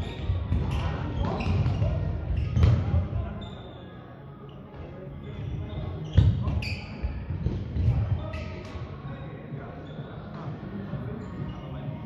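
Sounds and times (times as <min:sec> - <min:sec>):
shoe squeak: 0:00.0 - 0:09.2, 0:09.8 - 0:10.4, 0:11.2 - 0:12.0.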